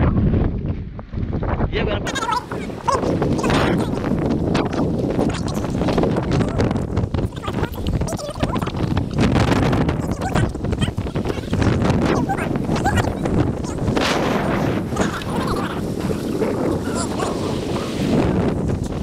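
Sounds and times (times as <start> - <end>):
wind buffeting microphone: 0.0 - 19.0
person laughing: 2.1 - 4.0.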